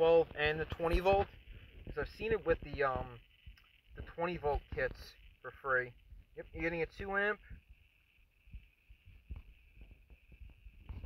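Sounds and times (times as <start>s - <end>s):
steady high hiss: 0.0s - 11.0s
soft low thumps: 0.1s - 5.2s.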